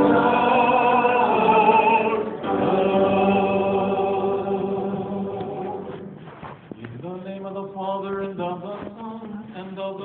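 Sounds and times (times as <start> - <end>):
choir singing a held chord: 0.0 - 6.0.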